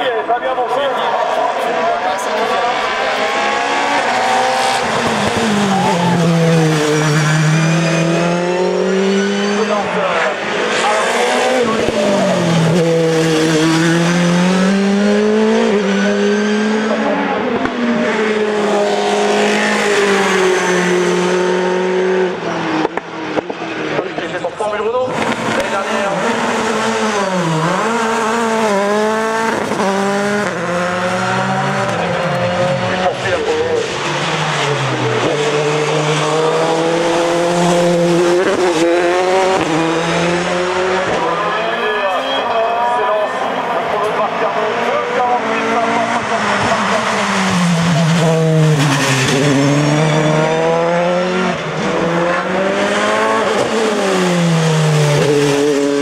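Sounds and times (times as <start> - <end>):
racing car engines at full throttle: 0.0 - 56.0.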